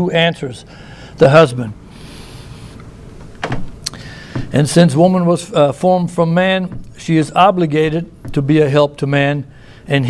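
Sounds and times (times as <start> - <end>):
faint hiss: 0.6 - 5.8.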